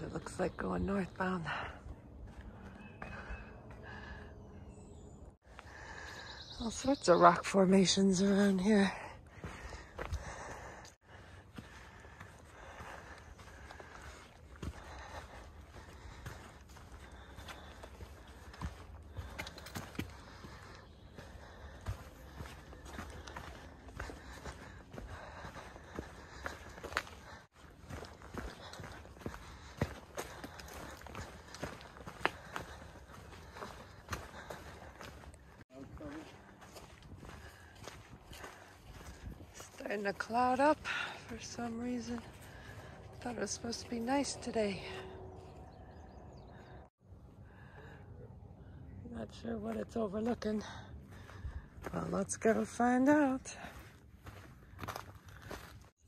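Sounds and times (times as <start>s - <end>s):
footsteps crunching on rocky trail: 0.0s - 4.2s, 5.5s - 46.8s, 49.3s - 56.0s.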